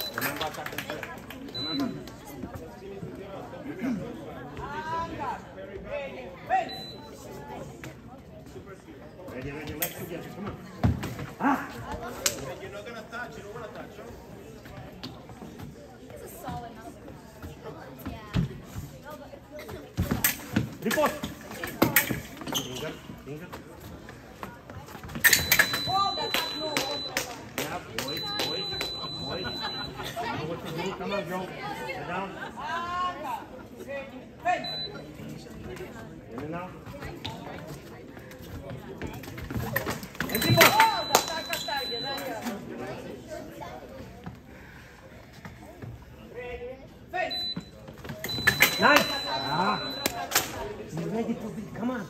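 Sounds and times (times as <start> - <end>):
spectators and coaches talking: 0.0 - 52.0
scoring machine beep: 25.2 - 27.2, 28.0 - 30.1, 40.3 - 42.4, 47.3 - 50.3.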